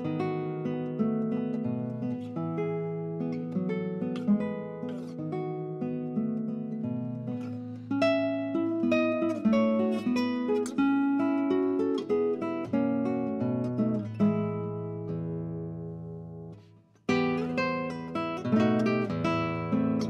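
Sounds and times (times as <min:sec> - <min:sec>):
acoustic guitar melody: 0:00.0 - 0:20.0.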